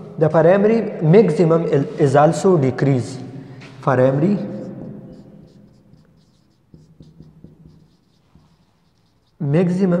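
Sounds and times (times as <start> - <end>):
marker writing on whiteboard: 3.8 - 10.0.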